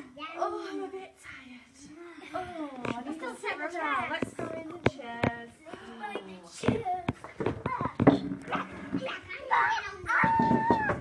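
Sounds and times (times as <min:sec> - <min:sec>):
children's voices and chatter: 0:00.0 - 0:11.0.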